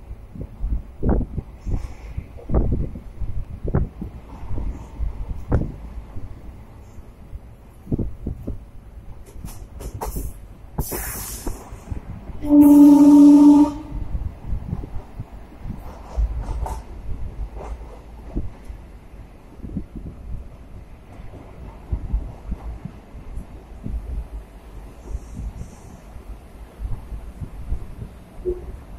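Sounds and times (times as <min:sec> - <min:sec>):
train low rumble: 0:00.0 - 0:28.9
wind buffeting microphone: 0:00.0 - 0:28.9
loud rushing hiss: 0:10.0 - 0:11.9.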